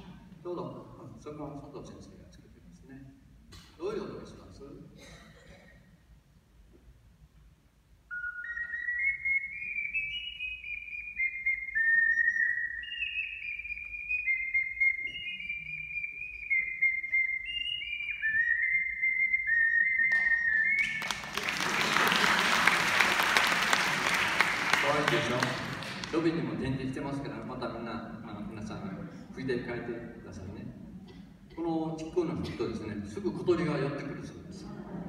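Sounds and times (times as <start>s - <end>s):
ocarina melody: 8.1s - 21.4s
audience applauding: 20.1s - 26.3s.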